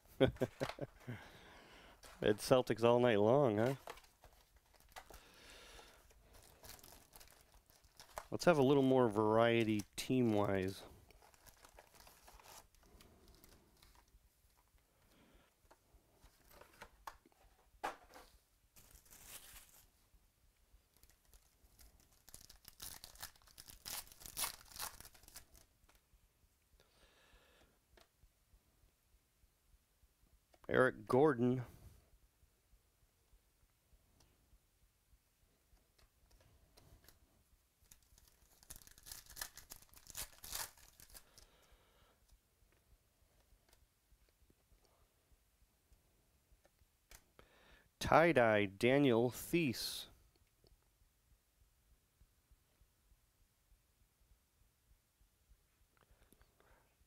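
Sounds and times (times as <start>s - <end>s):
trading cards rustling and clicking: 3.5s - 14.8s, 15.7s - 19.9s, 20.9s - 26.0s, 37.8s - 41.5s
foil wrapper tearing and crinkling: 6.3s - 8.4s, 11.1s - 14.0s, 18.8s - 19.9s, 21.0s - 25.7s, 37.8s - 41.4s.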